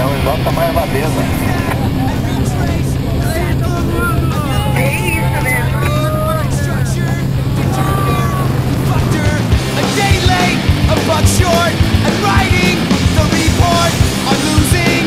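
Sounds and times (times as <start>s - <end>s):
people talking: 0.0s - 15.0s
propeller plane engine drone: 0.0s - 15.0s.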